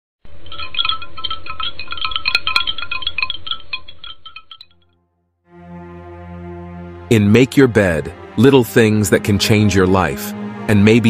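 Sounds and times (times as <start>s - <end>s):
low musical drone: 5.5s - 11.0s.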